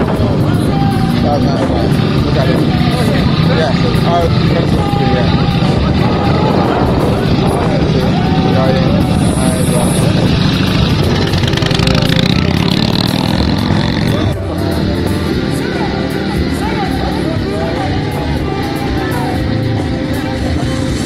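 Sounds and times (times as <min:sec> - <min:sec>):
background music: 0:00.0 - 0:21.0
motorcycle engine running: 0:00.0 - 0:21.0
voices: 0:00.0 - 0:21.0.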